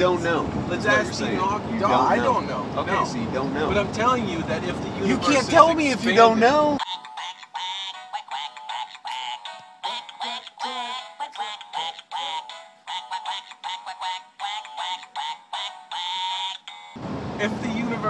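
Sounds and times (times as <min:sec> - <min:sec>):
toy singing in synthetic voice: 0:06.8 - 0:17.0.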